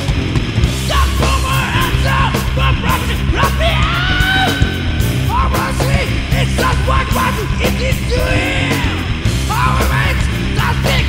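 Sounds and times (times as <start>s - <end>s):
doom metal band playing: 0.0s - 11.0s
high lead guitar line: 0.0s - 11.0s.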